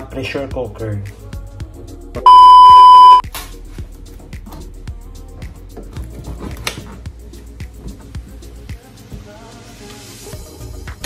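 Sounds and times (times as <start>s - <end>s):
loud electronic beep: 2.3s - 3.2s
quiet background music: 3.2s - 11.0s.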